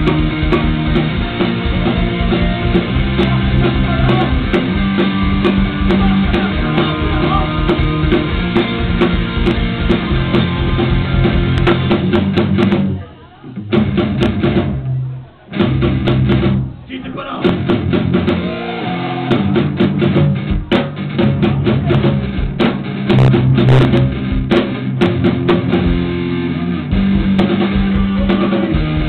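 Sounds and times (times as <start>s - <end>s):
live punk rock band: 0.0s - 29.0s.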